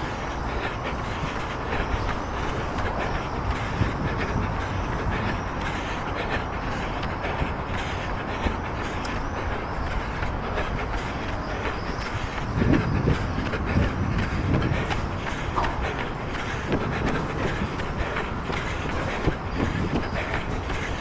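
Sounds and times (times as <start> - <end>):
running footfalls: 0.0 - 21.0
wind rushing over microphone: 0.0 - 21.0.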